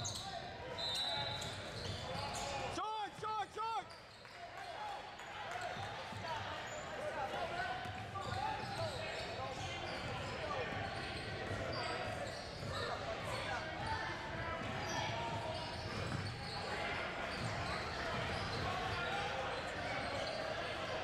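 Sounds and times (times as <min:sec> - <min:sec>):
sneakers squeaking: 0:00.0 - 0:02.8, 0:06.5 - 0:21.0
spectators' voices: 0:04.7 - 0:21.0.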